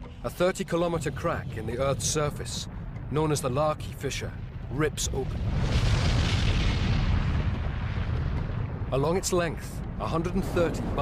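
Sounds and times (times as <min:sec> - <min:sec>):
deep eruption rumble: 0:00.7 - 0:11.0.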